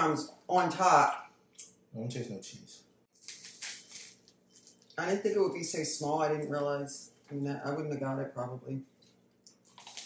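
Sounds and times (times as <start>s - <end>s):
food rustling and crinkling: 3.1s - 5.8s, 8.9s - 10.0s.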